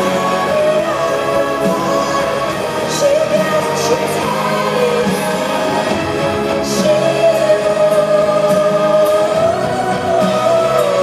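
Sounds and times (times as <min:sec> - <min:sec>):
symphonic metal band playing live: 0:00.0 - 0:11.0.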